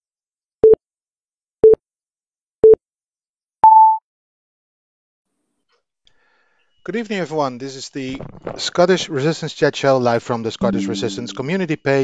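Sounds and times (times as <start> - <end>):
countdown timer beeps: 10.6 - 11.6.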